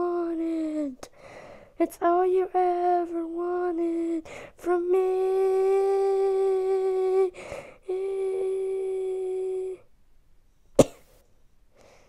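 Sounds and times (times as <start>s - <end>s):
quick breath: 1.2s - 1.8s, 11.8s - 12.0s
woman singing long note: 2.9s - 9.9s.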